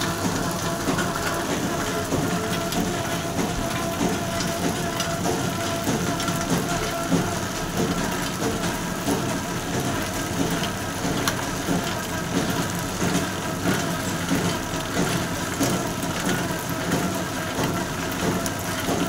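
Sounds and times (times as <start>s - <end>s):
machine clattering with sharp knocks: 0.0s - 19.0s.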